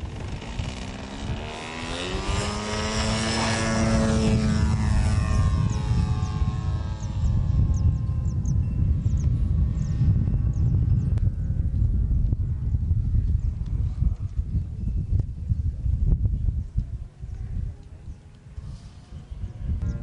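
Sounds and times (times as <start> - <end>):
heavy low rumble: 0.0 - 20.0
model airplane engine: 0.0 - 20.0.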